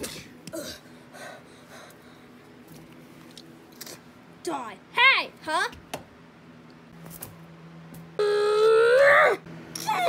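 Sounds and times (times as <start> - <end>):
person crying out: 8.2 - 10.0
person screaming: 8.2 - 10.0.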